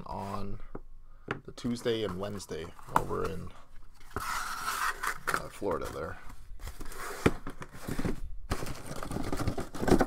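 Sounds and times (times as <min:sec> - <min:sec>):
cardboard scraping and rustling: 0:01.8 - 0:10.0.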